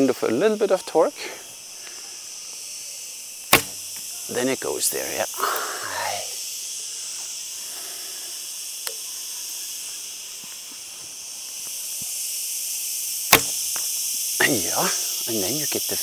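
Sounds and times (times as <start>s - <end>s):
high insect chorus: 0.0s - 16.0s
bowstring snapping on release: 3.5s - 4.1s, 8.8s - 9.0s, 13.3s - 14.0s
faint click: 8.8s - 9.0s.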